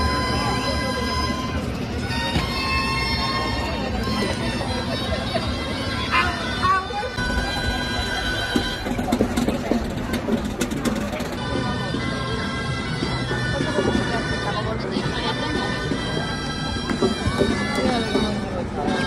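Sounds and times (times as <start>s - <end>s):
crowd chatter: 0.0s - 19.0s
reed pipe folk melody: 0.0s - 19.0s.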